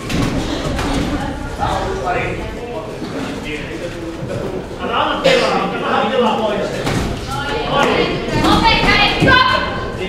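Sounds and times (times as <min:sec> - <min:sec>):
voices calling out in echoing hall: 0:00.0 - 0:10.0.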